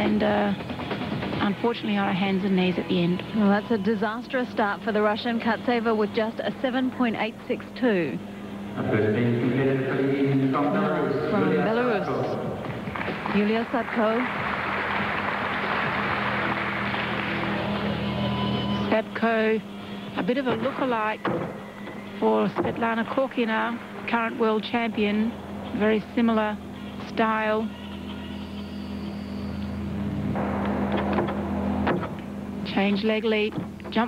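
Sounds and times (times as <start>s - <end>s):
arena background noise: 0.0s - 34.0s
low steady hum: 0.0s - 34.0s
crowd applauding: 12.6s - 18.8s.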